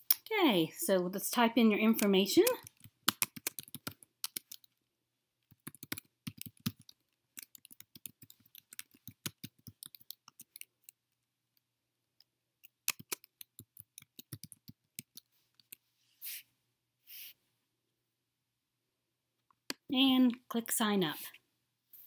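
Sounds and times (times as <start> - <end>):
computer keyboard typing: 2.0 - 4.7, 5.5 - 11.0, 12.6 - 15.7.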